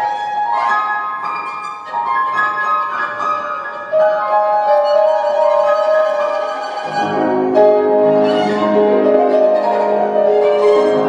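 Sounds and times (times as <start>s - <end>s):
piano: 0.0s - 11.0s
violin bowing held notes: 1.7s - 11.0s.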